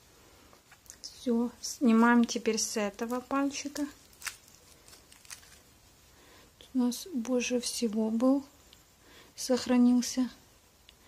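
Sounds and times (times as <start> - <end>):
foil crinkling: 2.8 - 5.8.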